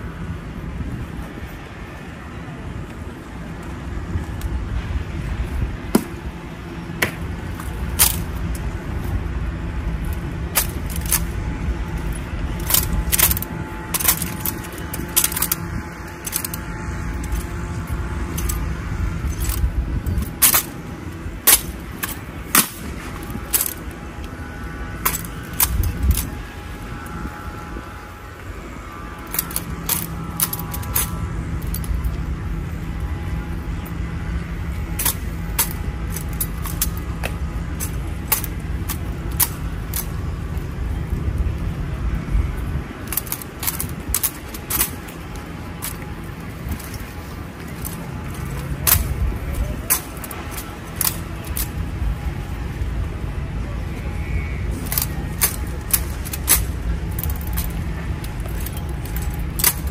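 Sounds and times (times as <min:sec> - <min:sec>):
rifles clacking and clicking: 0:07.0 - 0:09.2, 0:10.0 - 0:24.4, 0:25.0 - 0:27.2, 0:29.2 - 0:32.2, 0:34.6 - 0:40.7, 0:43.0 - 0:52.4, 0:54.7 - 0:59.9.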